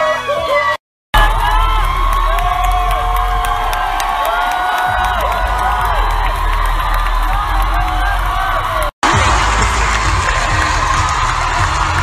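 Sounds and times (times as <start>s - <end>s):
crowd screaming and cheering: 0.0s - 12.0s
loud music with heavy bass beat: 1.2s - 12.0s.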